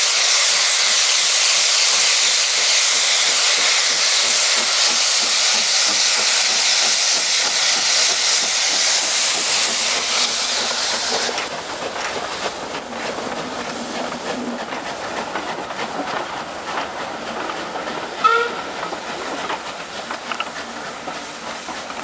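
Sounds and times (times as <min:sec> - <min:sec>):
steam locomotive hissing steam: 0:00.0 - 0:22.0.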